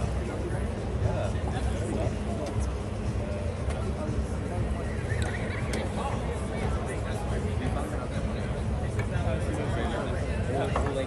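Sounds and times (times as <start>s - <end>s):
distant voices: 4.3s - 7.1s.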